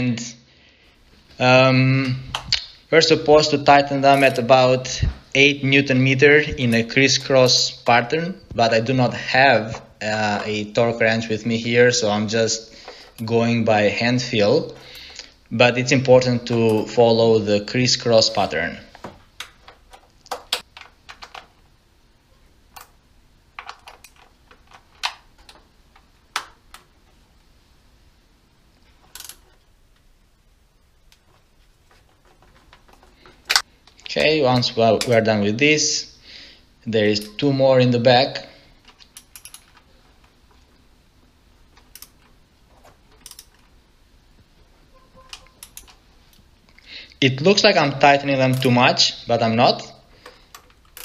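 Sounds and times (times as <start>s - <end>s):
tool clinking on nuts: 4.1s - 4.6s
socket ratchet clicking: 29.1s - 29.4s, 39.0s - 39.8s, 41.8s - 42.2s, 43.1s - 43.6s, 45.3s - 46.0s, 50.2s - 51.0s.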